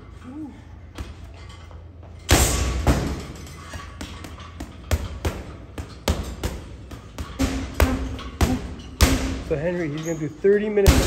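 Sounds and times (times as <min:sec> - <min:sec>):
punches thudding on heavy bag: 0:04.9 - 0:09.5.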